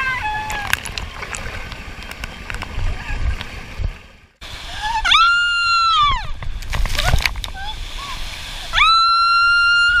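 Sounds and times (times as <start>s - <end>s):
rushing water: 0.0s - 10.0s.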